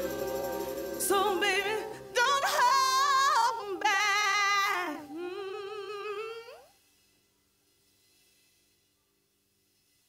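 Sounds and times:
woman singing long vibrato note: 0:00.0 - 0:06.7.

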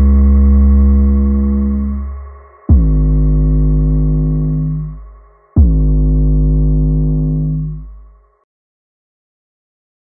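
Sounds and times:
deep bass note: 0:00.0 - 0:08.2
synthesizer chord: 0:00.0 - 0:08.4.

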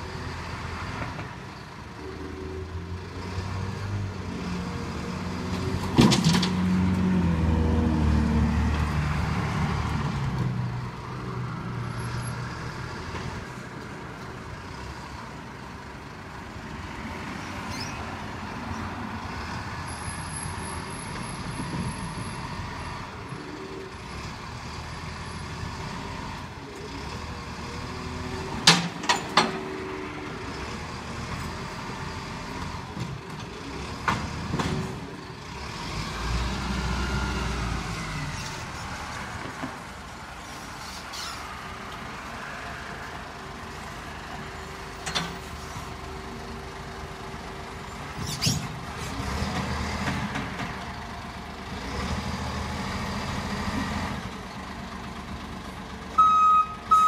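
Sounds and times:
garbage truck diesel engine: 0:00.0 - 0:57.0.

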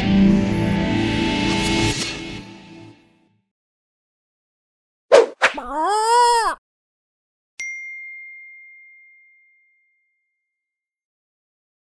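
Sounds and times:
bell-like ding: 0:07.6 - 0:10.2.

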